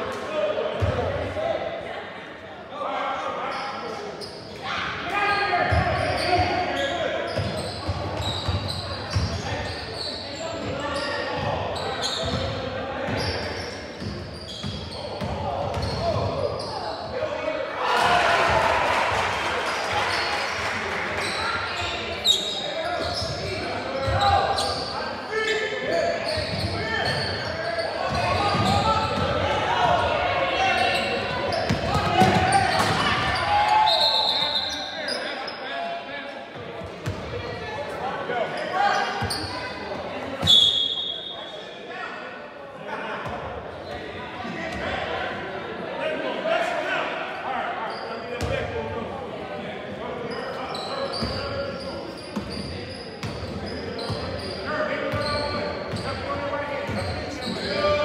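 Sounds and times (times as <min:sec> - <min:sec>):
spectators chatter echoing: 0:00.0 - 0:58.0
shrill whistle blast: 0:33.9 - 0:34.8, 0:40.4 - 0:41.4.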